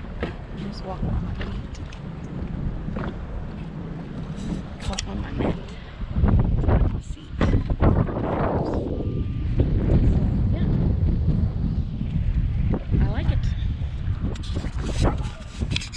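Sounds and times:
wind buffeting microphone: 0:00.0 - 0:15.9.

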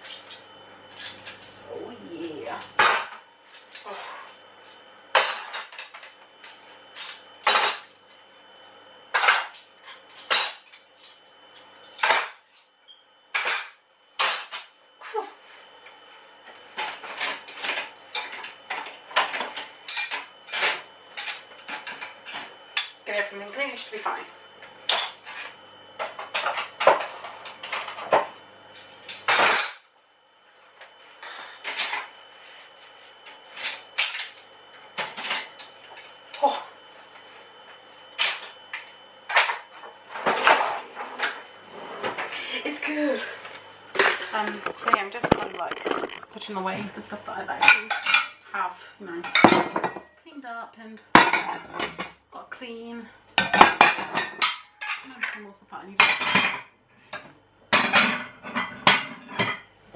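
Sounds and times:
dishes and cutlery clinking: 0:44.6 - 0:46.4.

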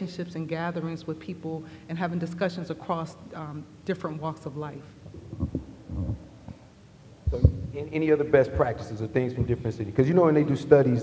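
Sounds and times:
low muffled thumps and rumbles: 0:05.1 - 0:06.6, 0:07.2 - 0:07.8.

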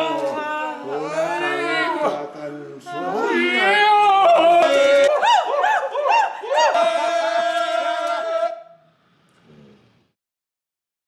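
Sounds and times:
yodel-like whoops: 0:02.9 - 0:08.8.

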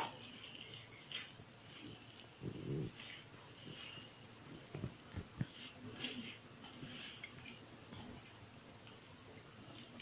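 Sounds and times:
hand scraping flour in steel bowl: 0:00.0 - 0:07.6.

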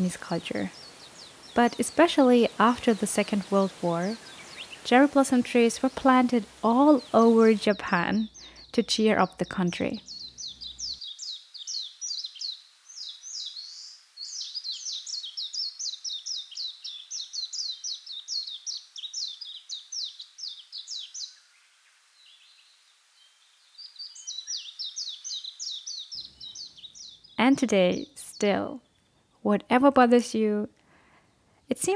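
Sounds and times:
small birds chirping: 0:00.0 - 0:31.9.

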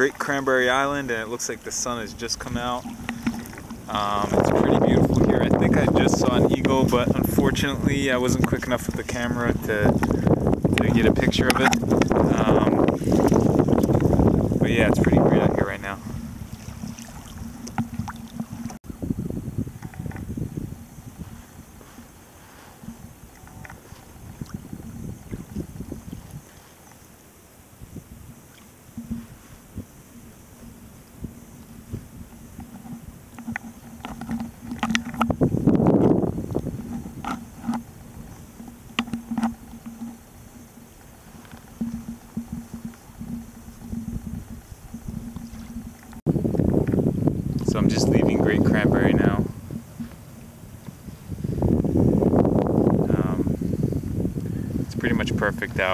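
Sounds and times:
paddle strokes: 0:00.0 - 0:18.8, 0:19.6 - 0:53.8
water lapping and splashing: 0:00.0 - 0:18.8, 0:19.6 - 0:55.9
wind rumble: 0:00.0 - 0:55.9.

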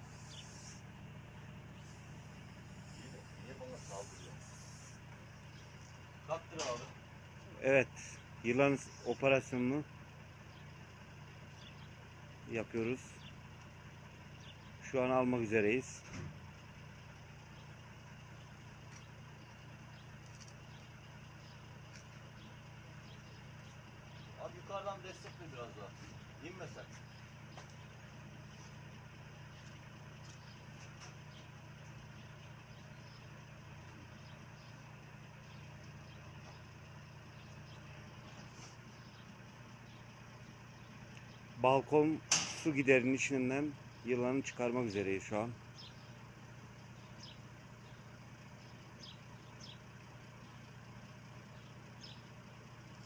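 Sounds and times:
vehicle engine idling: 0:00.0 - 0:53.0.

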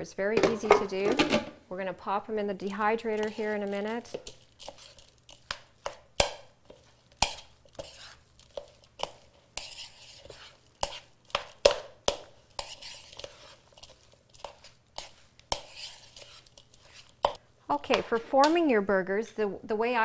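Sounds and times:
spoon mashing mixture in bowl: 0:02.5 - 0:18.7
spoon scraping and knocking bowl: 0:02.6 - 0:18.6.

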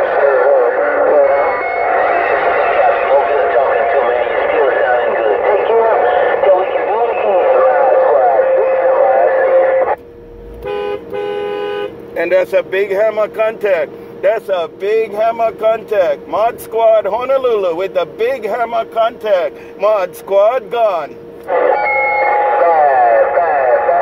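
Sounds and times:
overlapping radio voices: 0:00.0 - 0:10.0, 0:12.0 - 0:24.0
wavering radio whistles: 0:00.0 - 0:10.0, 0:21.5 - 0:24.0
steady electronic tone: 0:09.2 - 0:11.3.

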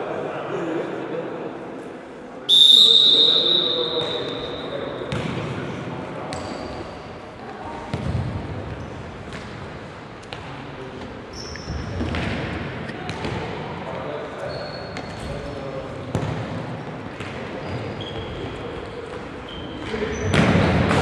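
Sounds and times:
indoor hall background noise: 0:00.0 - 0:21.0
shoes squeaking on court: 0:06.3 - 0:07.2, 0:10.3 - 0:13.4, 0:14.4 - 0:16.4, 0:17.2 - 0:20.4.

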